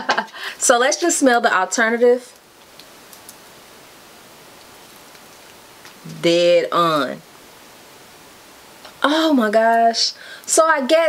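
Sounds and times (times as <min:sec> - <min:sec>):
faint room noise hiss: 0:00.0 - 0:11.0.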